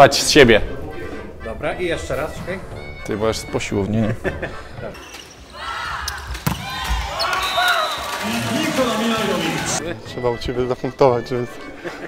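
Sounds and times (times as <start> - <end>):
shoes squeaking on court floor: 5.0 - 7.6
volleyball smack: 6.1 - 7.1.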